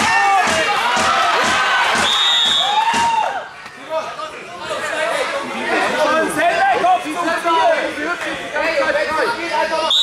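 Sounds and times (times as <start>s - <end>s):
whistle blast: 2.0s - 2.8s
spectators chattering: 3.4s - 10.0s.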